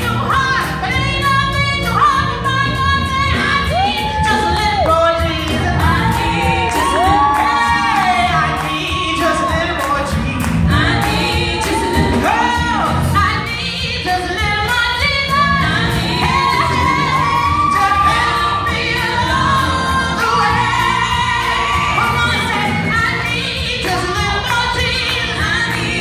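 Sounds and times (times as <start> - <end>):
electric bass and keyboard: 0.0 - 26.0
woman singing gospel: 0.0 - 26.0.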